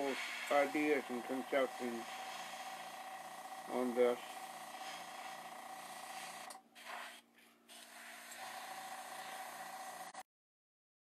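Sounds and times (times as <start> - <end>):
steady hum: 0.0 - 10.2
airbrush spraying hiss: 1.9 - 2.9, 4.8 - 9.6.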